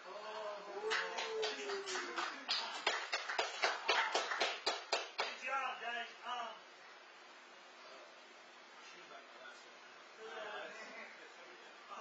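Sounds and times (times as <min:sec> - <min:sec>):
hand clapping: 0:00.9 - 0:05.4.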